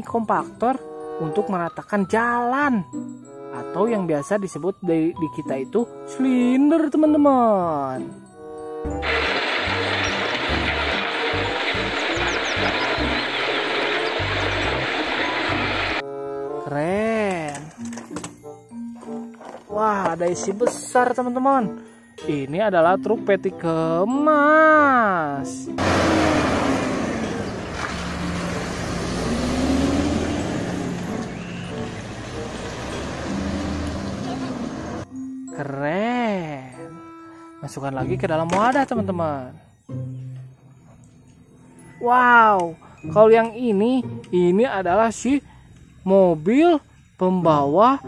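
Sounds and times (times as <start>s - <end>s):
background music with pulsing bass: 8.0s - 17.0s
diesel lorry engine: 8.6s - 16.0s, 25.7s - 35.1s
road roller rumbling over crushed stone: 9.0s - 16.0s, 25.8s - 35.0s.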